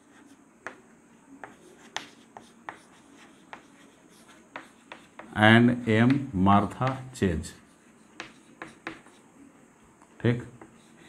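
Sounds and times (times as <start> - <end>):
chalk tapping and scraping on chalkboard: 0.0 - 9.3, 10.0 - 11.0.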